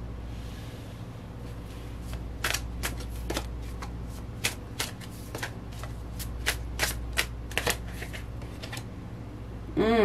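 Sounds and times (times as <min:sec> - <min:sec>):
cards shuffling with sharp snaps: 0:02.0 - 0:08.9.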